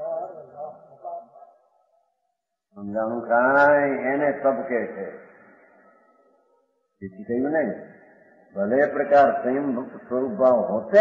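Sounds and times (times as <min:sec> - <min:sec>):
man speaking: 0:00.0 - 0:01.6, 0:02.7 - 0:05.3, 0:08.5 - 0:11.0.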